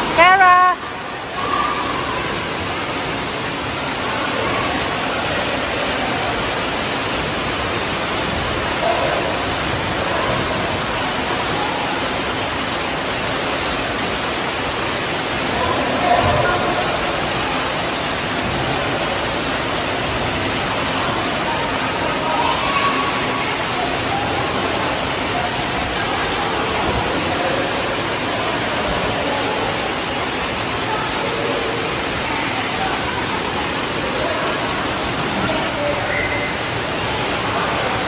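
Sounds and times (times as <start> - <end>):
waterfall pouring into pool: 0.0 - 38.0
faint children's voices: 0.4 - 3.1, 3.8 - 6.5, 20.7 - 38.0.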